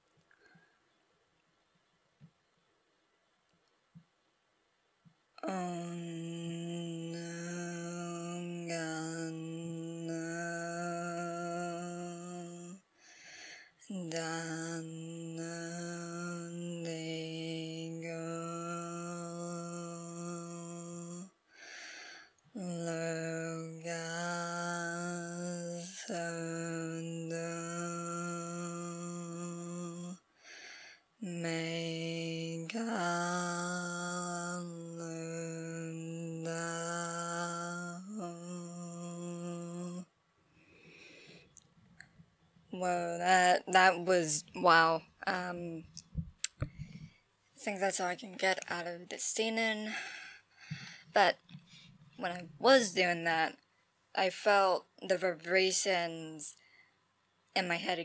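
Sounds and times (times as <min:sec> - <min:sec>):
woman chanting a low tone: 0:05.4 - 0:12.8, 0:13.8 - 0:21.3, 0:22.6 - 0:30.2, 0:31.2 - 0:40.1, 0:42.7 - 0:47.0, 0:47.6 - 0:50.1, 0:51.1 - 0:51.5, 0:52.2 - 0:53.6, 0:54.2 - 0:56.6.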